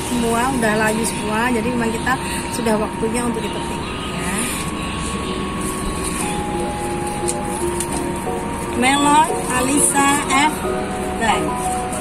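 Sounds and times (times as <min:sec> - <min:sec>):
long held tones: 0:00.0 - 0:12.0
steady background rumble: 0:00.0 - 0:12.0.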